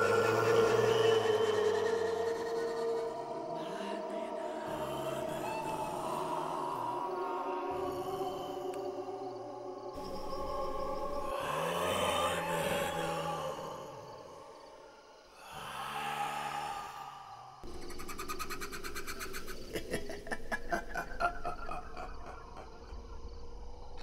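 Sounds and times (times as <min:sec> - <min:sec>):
low growling drone: 0:00.0 - 0:14.8.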